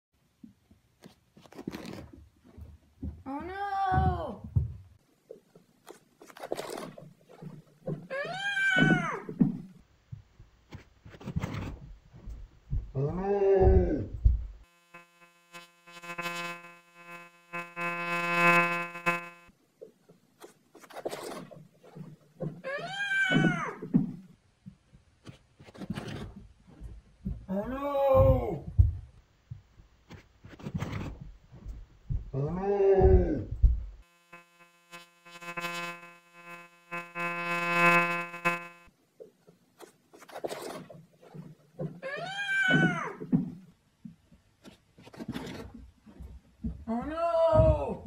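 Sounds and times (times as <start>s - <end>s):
low thumps: 11.6s - 14.6s, 31.0s - 34.0s
puppy thumping on stairs: 28.2s - 29.7s.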